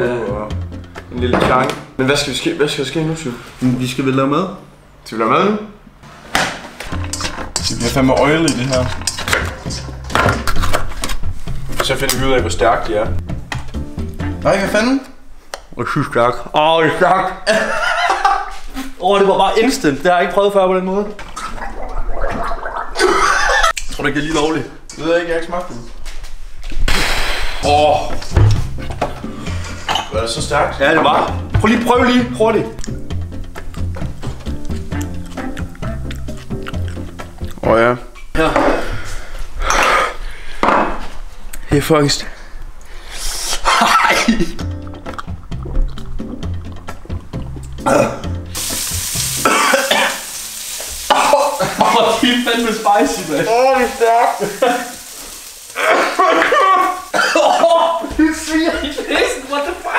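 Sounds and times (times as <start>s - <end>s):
background music with bass line: 6.9s - 14.6s, 27.7s - 38.0s, 44.4s - 49.6s
man gargling: 21.6s - 23.6s, 47.8s - 48.4s
food sizzling in a pan: 48.2s - 59.9s.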